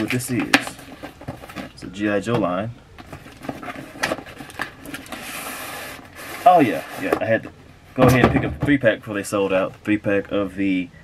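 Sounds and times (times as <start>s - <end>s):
cardboard scraping rustle: 0.0s - 1.8s, 3.0s - 7.4s.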